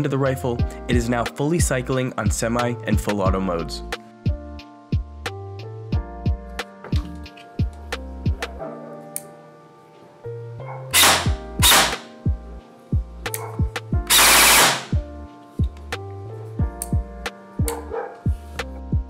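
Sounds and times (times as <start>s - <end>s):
airsoft gun firing: 11.0s - 12.1s, 14.1s - 15.0s.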